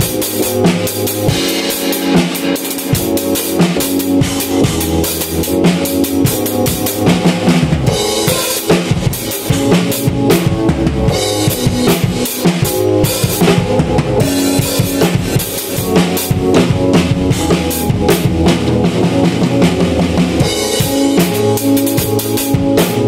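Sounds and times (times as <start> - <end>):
drum groove: 0.0 - 23.0
sustained keyboard chords: 0.0 - 23.0.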